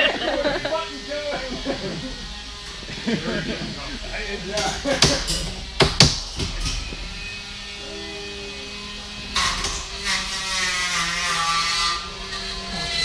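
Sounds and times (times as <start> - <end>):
small electric motors whining: 0.0 - 13.0
sharp knock: 5.8 - 6.6.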